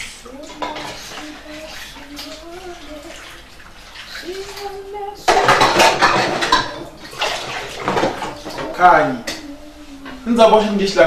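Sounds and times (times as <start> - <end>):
water splashing in sink: 0.0 - 11.0.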